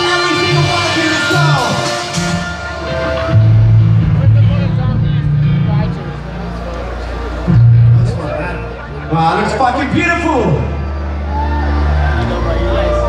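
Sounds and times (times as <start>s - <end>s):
metal band playing live: 0.0s - 10.8s.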